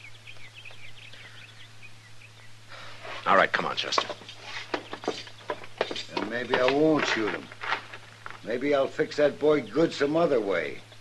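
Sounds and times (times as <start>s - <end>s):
footsteps walking: 3.0s - 8.8s.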